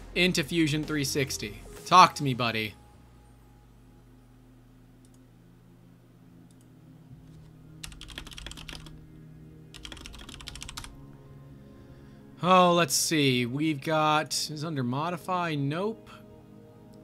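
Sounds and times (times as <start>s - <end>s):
computer keyboard typing: 7.8s - 9.0s, 9.7s - 10.9s.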